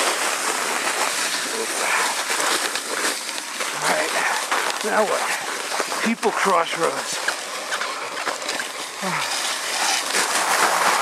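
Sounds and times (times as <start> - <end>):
sled runners scraping snow: 0.0 - 11.0
person grunting: 9.0 - 9.3.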